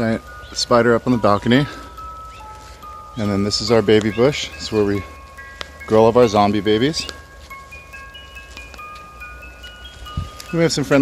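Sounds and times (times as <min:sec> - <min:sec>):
chimes ringing: 0:00.0 - 0:11.0.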